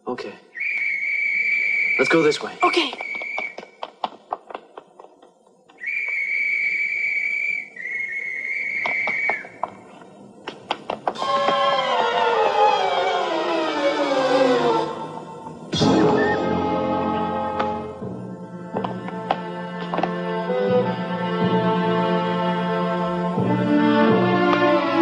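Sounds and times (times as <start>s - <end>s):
high whistle-like note: 0.6s - 2.3s, 5.8s - 9.5s, 15.7s - 17.8s
light footstep taps: 2.8s - 6.2s, 18.8s - 20.2s
descending musical phrase: 11.2s - 18.6s.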